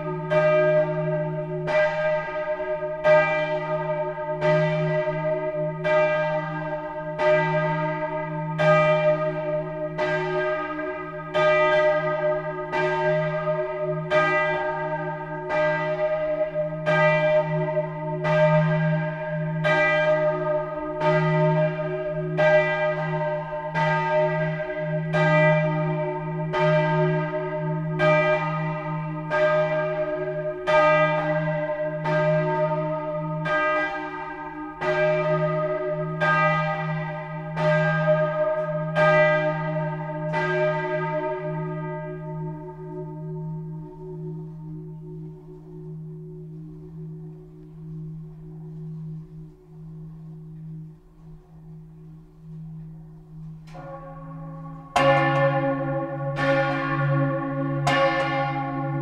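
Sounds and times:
large bronze bell ringing: 0:00.0 - 0:59.0.

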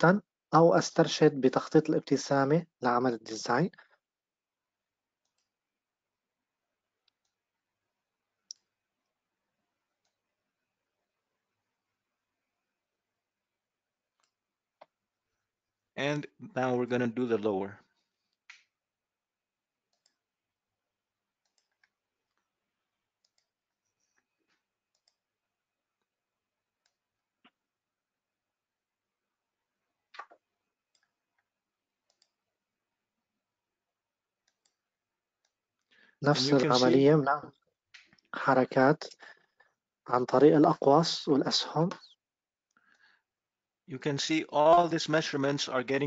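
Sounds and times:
computer mouse clicks: 0:05.2 - 0:05.6, 0:14.2 - 0:15.0, 0:19.9 - 0:20.2, 0:21.4 - 0:22.4, 0:23.2 - 0:25.3, 0:30.1 - 0:32.4, 0:34.4 - 0:34.8
faint computer mouse clicks: 0:24.9 - 0:25.2, 0:32.1 - 0:32.4.

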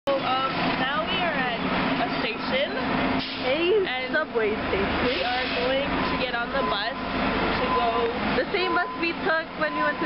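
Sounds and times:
young woman talking: 0:00.1 - 0:10.0.

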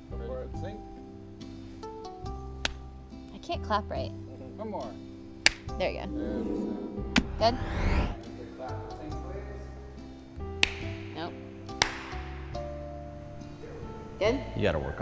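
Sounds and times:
background music: 0:00.0 - 0:15.0
sharp hand claps: 0:10.6 - 0:11.0, 0:11.8 - 0:12.2.

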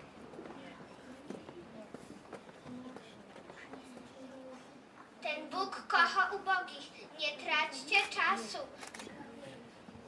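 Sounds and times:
quiet murmuring voices: 0:00.0 - 0:05.7, 0:06.8 - 0:10.0.

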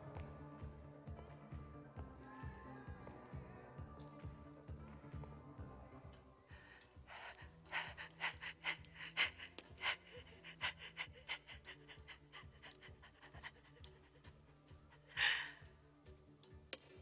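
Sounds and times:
woman panting and crying: 0:06.5 - 0:15.7.

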